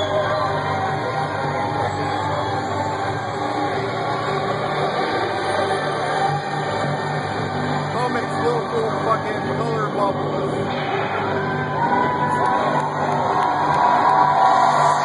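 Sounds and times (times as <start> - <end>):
industrial electronic music: 0.0 - 15.0.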